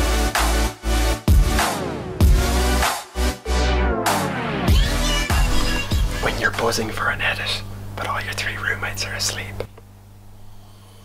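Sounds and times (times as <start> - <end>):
steady low hum: 4.8 - 11.0
man whispering: 6.2 - 9.7.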